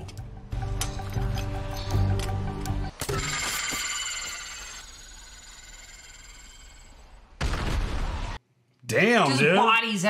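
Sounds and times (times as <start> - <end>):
high-pitched ringing tones: 3.0 - 7.1.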